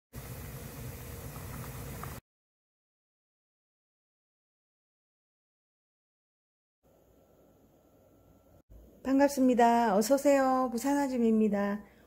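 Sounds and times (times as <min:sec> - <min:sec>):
soup boiling: 0:00.2 - 0:02.2.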